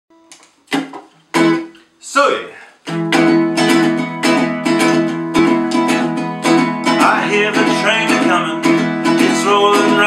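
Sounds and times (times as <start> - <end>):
ukulele chords strummed: 0.1 - 1.7, 2.8 - 10.0
ukulele pluck: 2.8 - 10.0.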